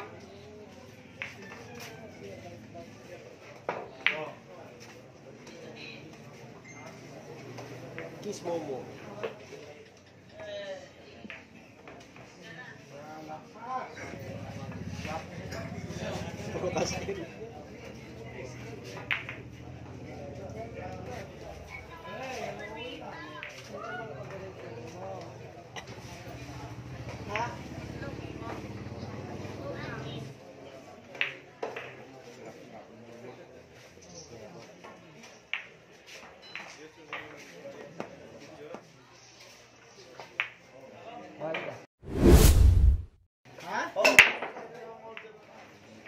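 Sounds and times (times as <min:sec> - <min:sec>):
quiet spectators talking: 0:00.0 - 0:41.2
low hum: 0:42.1 - 0:43.2
whoosh with deep rumble: 0:42.1 - 0:43.2.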